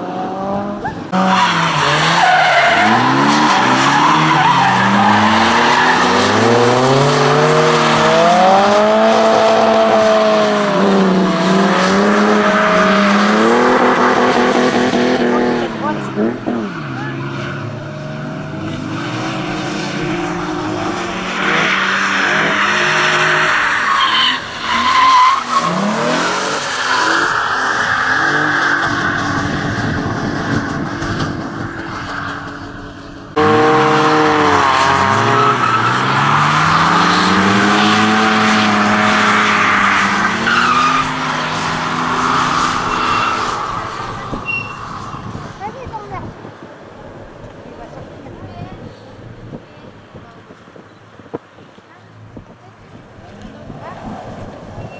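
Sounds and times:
car engines revving: 0.0 - 54.9
tyres squealing: 0.8 - 8.1.

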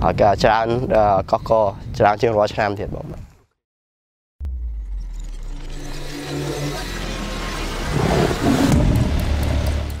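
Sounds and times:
deep rumble: 4.4 - 10.0
loud rushing whoosh: 5.8 - 10.0.

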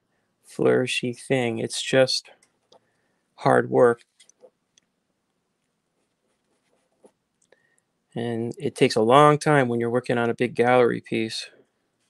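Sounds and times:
pastel stick scratching on paper: 6.0 - 7.2.

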